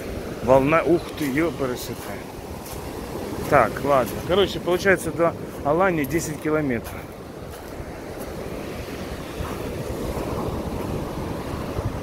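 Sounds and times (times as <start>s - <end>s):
waves breaking on pebble beach: 0.0s - 12.0s
wind rumble on microphone: 0.0s - 12.0s.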